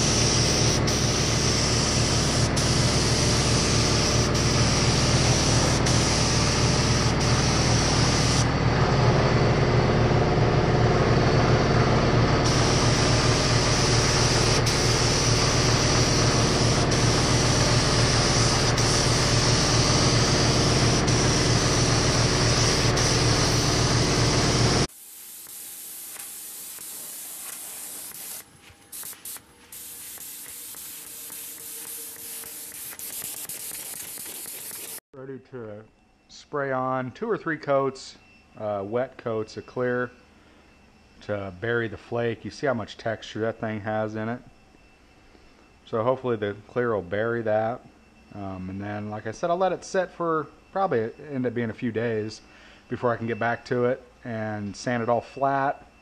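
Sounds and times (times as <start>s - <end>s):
spray gun hissing: 0.0s - 8.6s, 12.4s - 35.0s.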